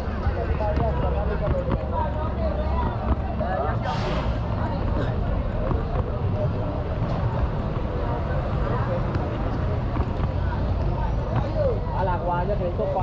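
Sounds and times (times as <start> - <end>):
indistinct chatter of people: 0.0 - 13.0.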